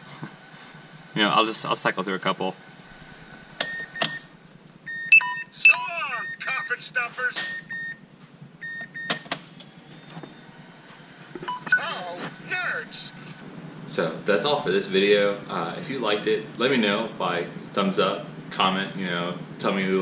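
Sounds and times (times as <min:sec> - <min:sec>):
short electronic beeps: 0:04.9 - 0:08.0, 0:11.4 - 0:12.0.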